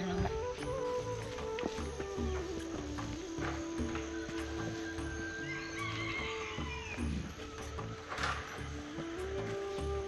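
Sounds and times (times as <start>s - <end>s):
background music with low beat: 0.0s - 10.0s.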